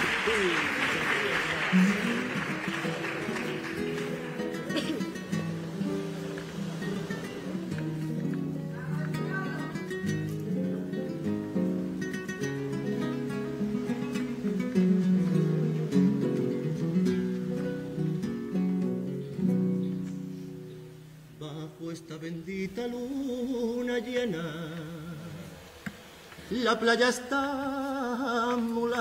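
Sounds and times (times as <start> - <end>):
acoustic guitars strumming chords: 0.0 - 29.0.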